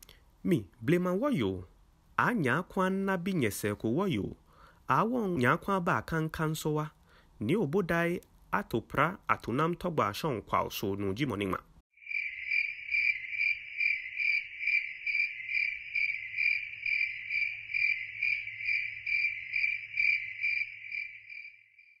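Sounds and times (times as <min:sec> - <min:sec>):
insect chirping: 0:11.9 - 0:22.0.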